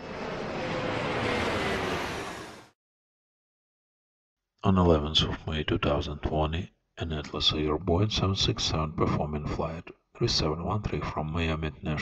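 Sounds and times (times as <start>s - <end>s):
jet airplane flyby: 0.0s - 2.8s.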